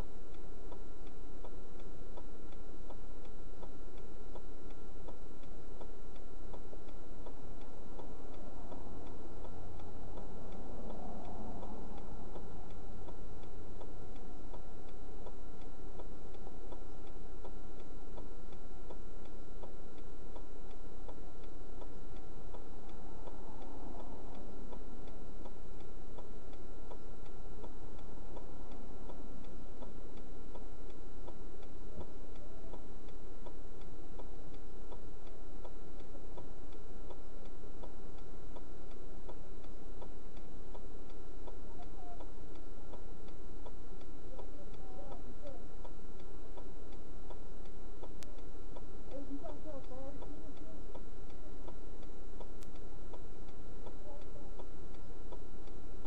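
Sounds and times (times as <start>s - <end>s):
car flasher relay ticking: 0.0s - 56.0s.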